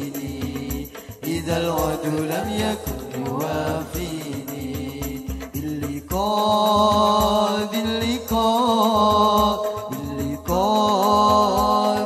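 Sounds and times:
men singing devotional song: 0:00.0 - 0:12.0
steady low drum beat: 0:00.0 - 0:12.0.

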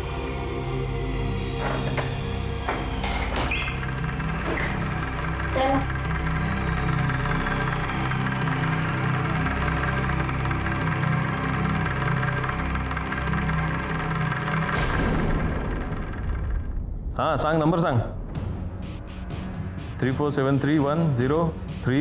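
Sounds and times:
suspenseful music with low tones: 0:00.0 - 0:22.0.

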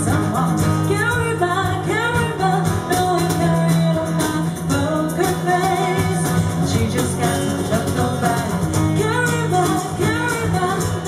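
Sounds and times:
cajon beat: 0:00.0 - 0:11.0
people singing into microphones: 0:00.0 - 0:11.0
strummed acoustic guitars: 0:00.0 - 0:11.0.

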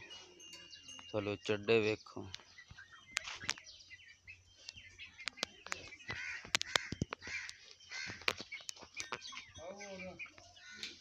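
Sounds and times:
birds calling: 0:00.0 - 0:11.0
harsh caws: 0:06.1 - 0:08.2.

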